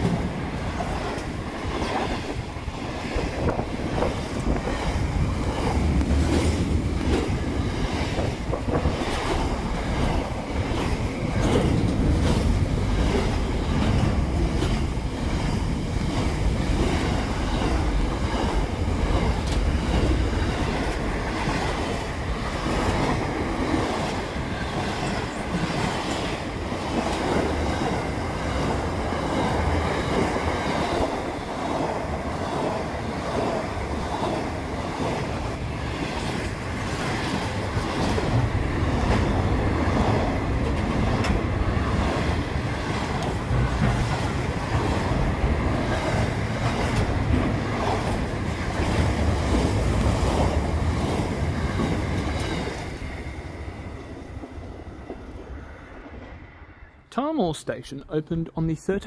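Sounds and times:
freight train wheels rumbling: 0.0 - 58.9.

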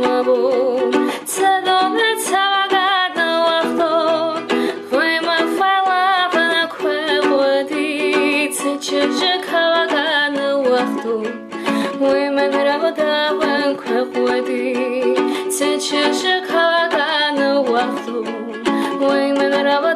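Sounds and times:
ukulele strumming: 0.0 - 19.9
woman singing: 0.0 - 19.9.

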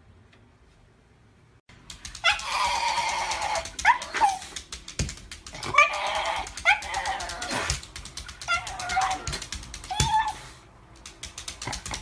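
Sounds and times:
dog whining and yowling: 2.1 - 4.6, 5.6 - 10.6.

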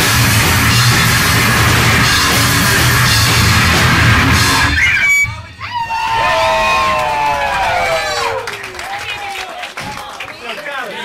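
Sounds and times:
live rock band playing: 0.0 - 5.6
audience whooping: 4.6 - 10.5.

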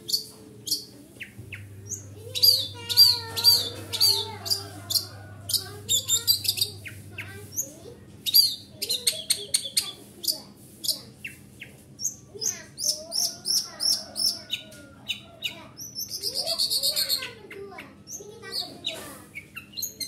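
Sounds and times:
faint low hum: 0.0 - 9.1
bird chattering song: 0.0 - 20.0.

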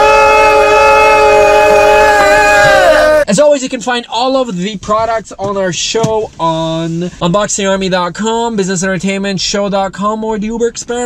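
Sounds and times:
long held note: 0.0 - 3.2.

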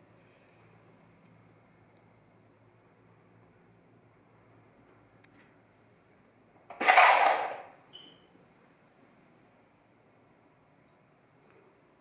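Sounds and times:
faint high-pitched squeak: 7.9 - 8.3.

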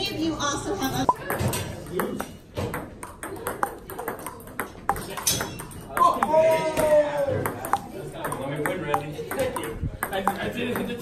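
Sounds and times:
ping-pong ball hits: 1.1 - 11.0.

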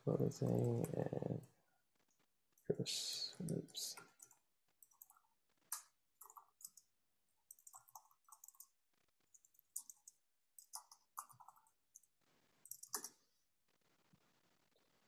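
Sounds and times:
typing on computer keyboard: 3.4 - 13.2.

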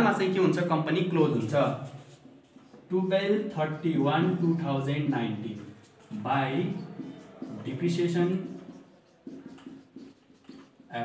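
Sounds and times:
man talking: 0.0 - 2.0, 2.9 - 8.8
marker squeaking on whiteboard: 0.0 - 11.0.

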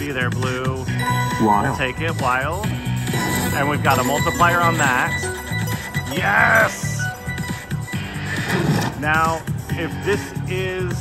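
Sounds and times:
slot machine music with bass beat: 0.0 - 11.0.

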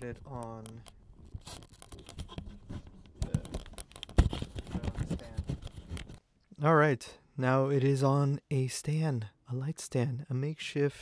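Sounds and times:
recorder handling clicks and scrapes: 0.3 - 6.2.

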